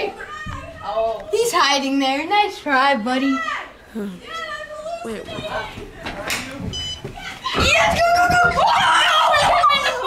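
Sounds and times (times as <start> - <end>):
excited children's voices: 0.0 - 6.6, 7.2 - 10.0.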